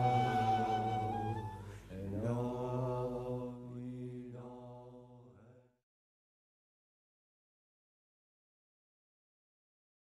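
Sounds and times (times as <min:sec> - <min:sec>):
person chanting long notes: 0:00.0 - 0:02.4.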